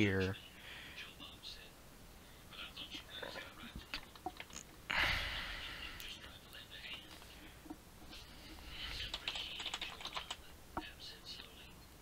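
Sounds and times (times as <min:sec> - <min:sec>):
computer keyboard keys clicking: 0:04.0 - 0:04.6, 0:09.0 - 0:10.4.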